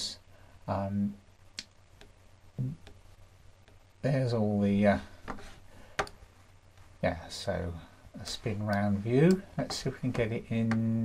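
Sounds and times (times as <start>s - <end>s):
man's voice: 7.0s - 11.0s.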